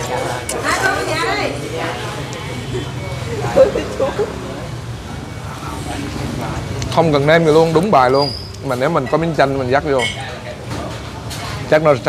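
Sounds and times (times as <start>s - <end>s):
voices: 0.0s - 7.0s
road traffic rumble: 1.9s - 7.6s.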